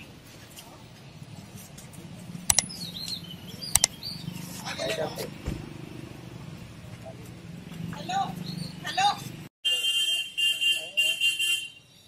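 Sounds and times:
high electronic beeping: 2.5 - 2.7.

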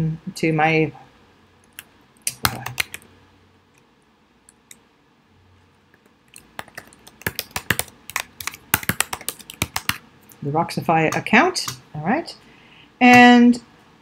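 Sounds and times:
computer keyboard typing: 2.3 - 3.0, 6.0 - 10.0.

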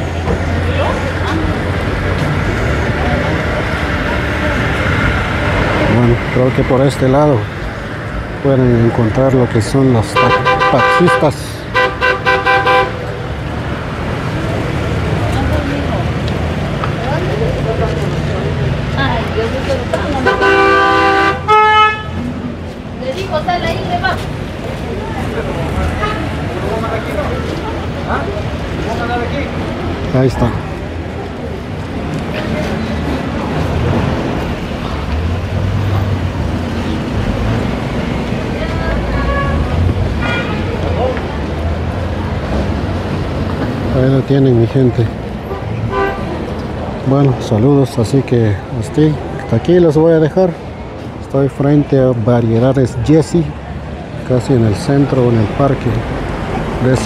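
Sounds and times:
faint voices: 0.0 - 11.8, 22.1 - 57.0
traffic rumble: 0.0 - 57.0
car horn honks: 10.2 - 13.1, 20.2 - 22.2, 39.1 - 40.8, 45.4 - 46.3.

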